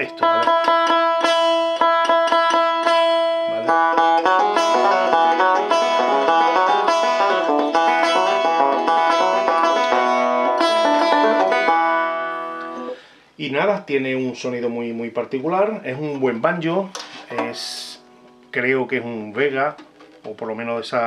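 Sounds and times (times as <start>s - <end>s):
banjo picking: 0.0s - 13.2s, 15.6s - 21.0s.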